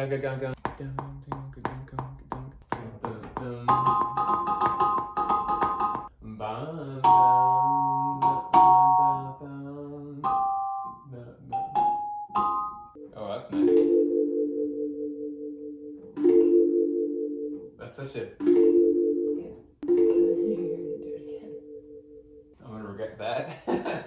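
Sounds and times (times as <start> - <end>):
electronic keyboard notes and chords: 3.7 - 6.1, 10.2 - 17.8, 18.4 - 22.5.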